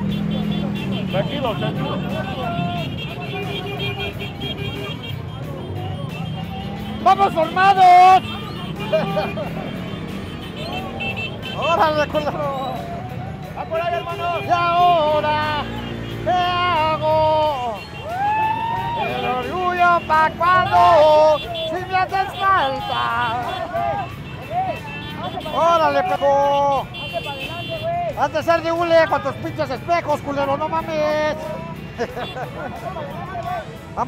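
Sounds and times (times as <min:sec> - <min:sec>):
crowd voices: 0:00.0 - 0:34.0
man calling out: 0:01.0 - 0:04.2, 0:06.8 - 0:09.6, 0:10.8 - 0:12.7, 0:13.5 - 0:17.8, 0:18.9 - 0:31.9.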